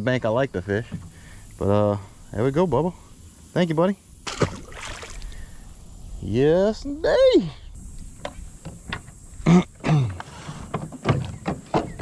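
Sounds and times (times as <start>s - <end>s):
soft water noise: 0.6s - 9.4s
fish splashing at surface: 4.2s - 5.4s.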